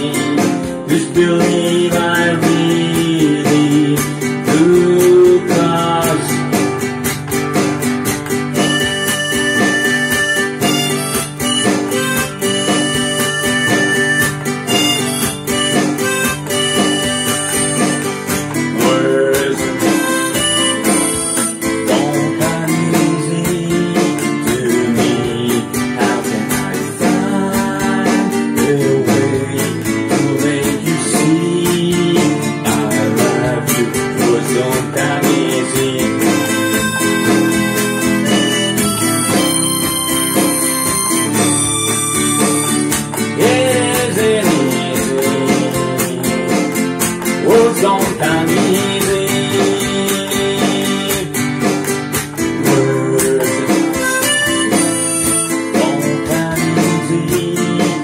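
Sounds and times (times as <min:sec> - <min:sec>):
strummed nylon-string guitar: 0:00.0 - 0:58.0
harmonica melody: 0:06.8 - 0:28.1, 0:32.7 - 0:58.0.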